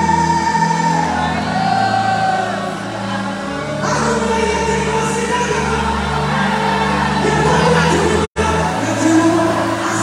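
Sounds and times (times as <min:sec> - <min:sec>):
gospel singing with instruments: 0:00.0 - 0:10.0.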